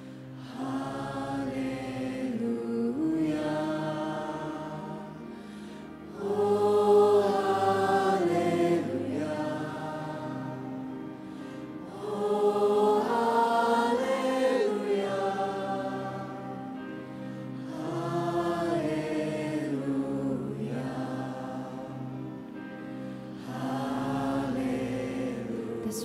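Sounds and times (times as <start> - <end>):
woman singing a worship song: 0.4 - 5.0, 25.5 - 26.0.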